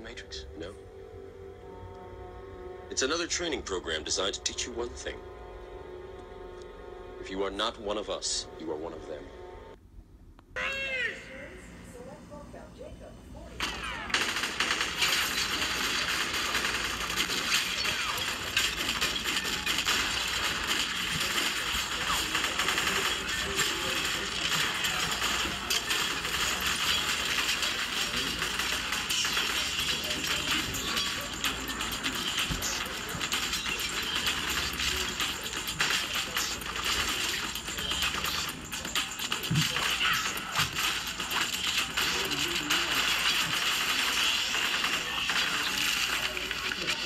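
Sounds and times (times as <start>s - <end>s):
rapid gunfire: 13.6s - 47.0s.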